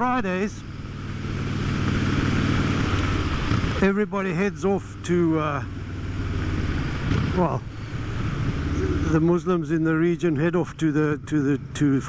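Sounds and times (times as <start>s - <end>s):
motorcycle engine running: 0.0s - 12.0s
wind and road noise: 0.0s - 12.0s.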